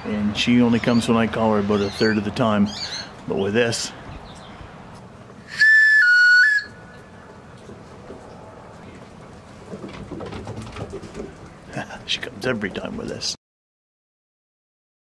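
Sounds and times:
two-tone wooden whistle: 5.5s - 6.9s.

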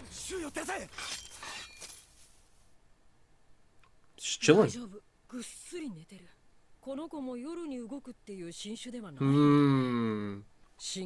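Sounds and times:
person shouting an order: 4.4s - 4.8s.

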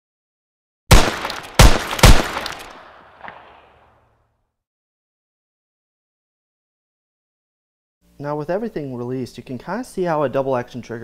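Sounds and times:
gunshots with echoing tail: 0.9s - 4.0s
small crack: 2.3s - 3.7s.

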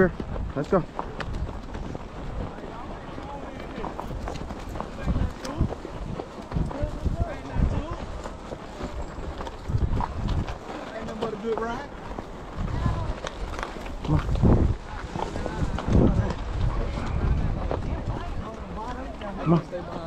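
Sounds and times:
horse hooves on dirt trail: 0.0s - 20.0s
riders' voices: 0.0s - 20.0s.

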